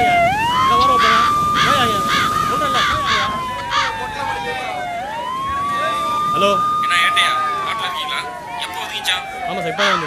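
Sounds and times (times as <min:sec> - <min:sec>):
siren: 0:00.0 - 0:10.0.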